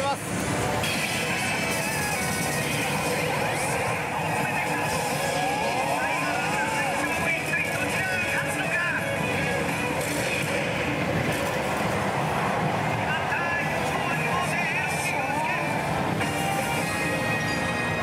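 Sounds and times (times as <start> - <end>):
din of gaming hall: 0.0 - 18.0
slot machine sound effects and music: 0.1 - 18.0.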